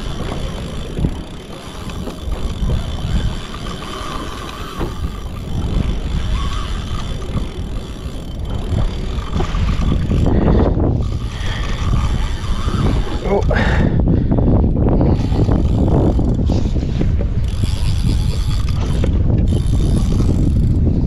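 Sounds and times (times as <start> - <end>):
wind buffeting microphone: 0.0 - 21.0
water slapping against kayak hull: 8.4 - 11.6.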